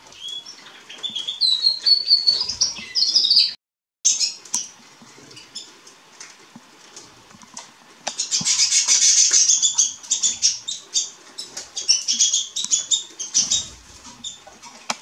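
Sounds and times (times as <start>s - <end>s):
canary singing trills: 0.2s - 4.8s, 8.1s - 14.5s.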